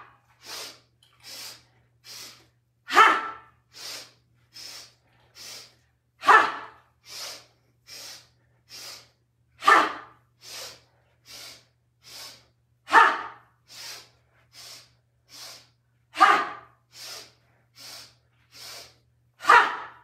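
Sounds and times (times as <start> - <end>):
woman sniffing through nose: 0.4 - 2.5, 3.7 - 5.8, 7.0 - 9.8, 10.4 - 12.5, 13.6 - 19.0.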